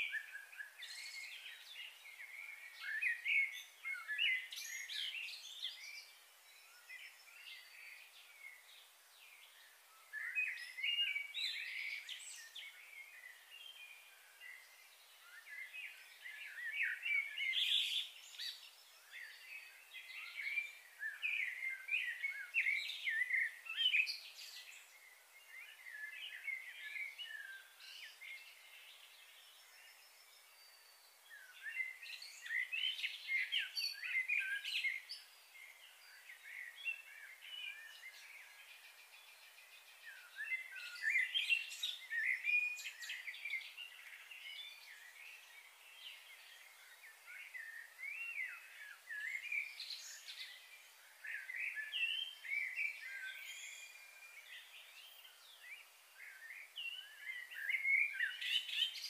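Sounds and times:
faint outdoor hiss: 0.0s - 59.0s
small birds chirping: 0.0s - 59.0s.

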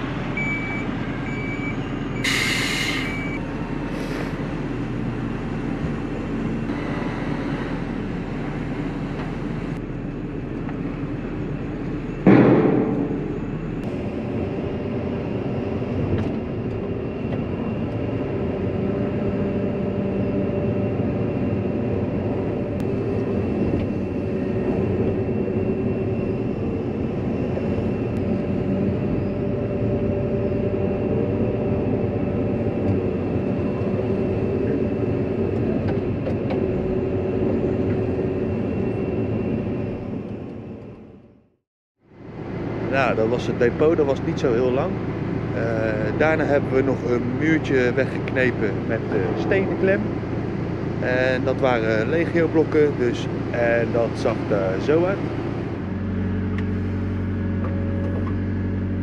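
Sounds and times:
excavator engine and hydraulics: 0.0s - 59.0s.

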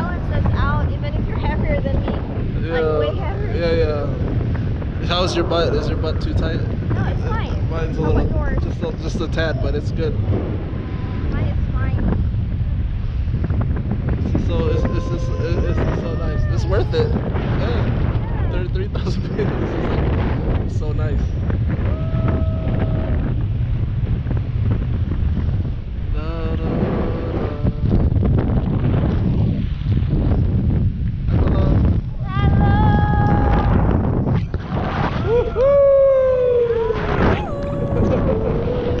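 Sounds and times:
voices: 0.0s - 4.3s, 5.0s - 10.2s, 14.3s - 21.2s, 26.2s - 28.1s
wind buffeting microphone: 0.0s - 39.0s.

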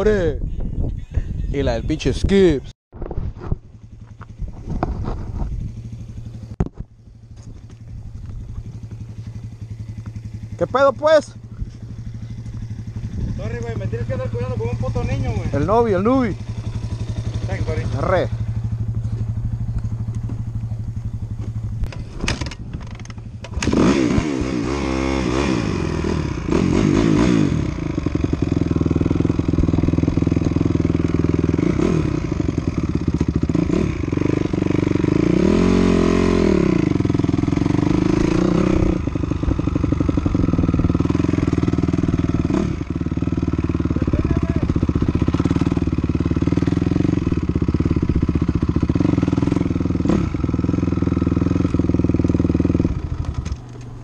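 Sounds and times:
dirt bike engine revving: 7.2s - 53.6s.

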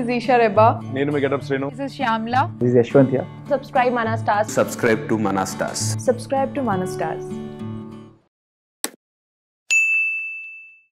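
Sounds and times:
notification bell ding: 9.7s - 10.9s.

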